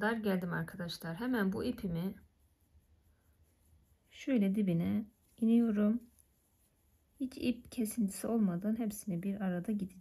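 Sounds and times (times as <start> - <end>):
person speaking: 0.0 - 2.3, 4.0 - 6.2.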